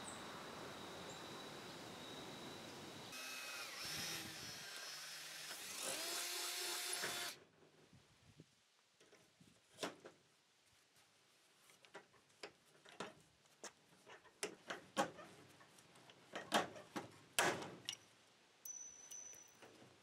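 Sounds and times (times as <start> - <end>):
cordless drill boring through metal: 3.1 - 7.4.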